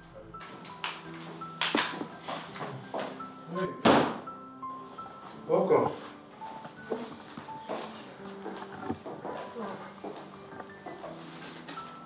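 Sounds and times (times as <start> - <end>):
background music sustained tones: 0.0 - 12.0
door thudding shut: 3.8 - 4.3.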